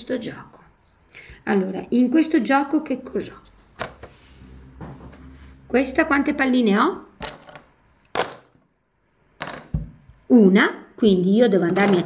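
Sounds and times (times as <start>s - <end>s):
clothespins knocking on wooden table: 7.2s - 8.6s, 9.4s - 10.1s.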